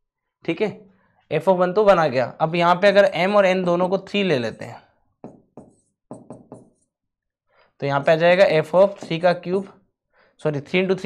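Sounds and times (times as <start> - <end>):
pen tapping on board: 5.2 - 6.8.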